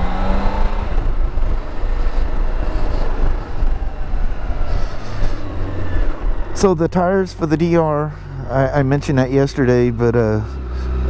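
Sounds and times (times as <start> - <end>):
motorcycle engine: 0.0 - 11.0
rushing wind and road noise: 0.0 - 11.0.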